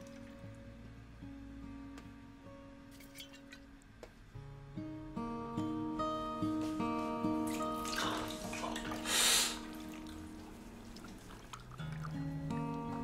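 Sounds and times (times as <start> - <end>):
water splashing in washbasin: 0.0 - 0.6, 7.4 - 13.0
acoustic guitar music: 0.0 - 13.0.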